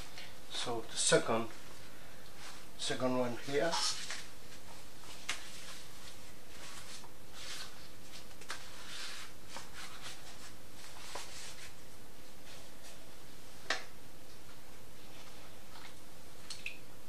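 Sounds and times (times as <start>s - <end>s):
steady background hiss: 0.0s - 17.0s
wet silk scarf rustling: 2.4s - 11.8s.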